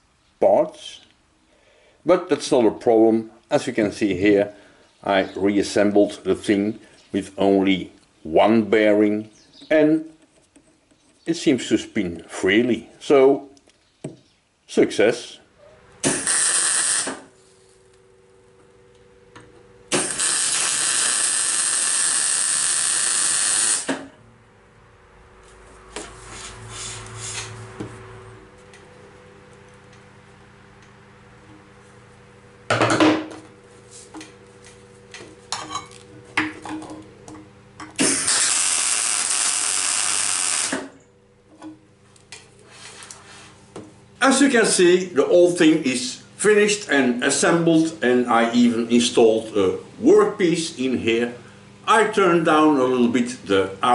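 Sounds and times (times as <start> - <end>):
faint steady hum: 0.0 - 53.9
welding arc crackling: 16.0 - 17.3, 19.9 - 24.0, 38.0 - 41.0
metal being handled: 35.1 - 37.9.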